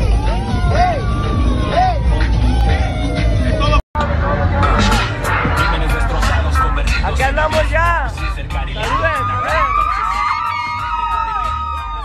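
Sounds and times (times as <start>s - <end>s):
voices shouting: 0.0s - 3.8s, 8.7s - 12.0s
street-party music with heavy bass: 0.0s - 12.0s.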